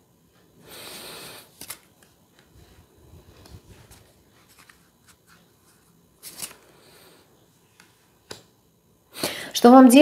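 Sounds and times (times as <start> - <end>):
cards shuffling: 1.4 - 2.5, 3.4 - 6.8.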